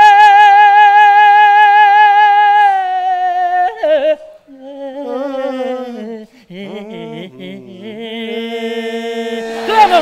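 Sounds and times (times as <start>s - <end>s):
man singing high note: 0.0s - 10.0s.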